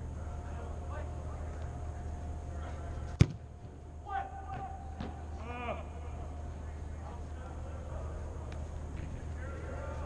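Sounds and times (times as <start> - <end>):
soccer ball kicked thud: 3.2 - 3.4.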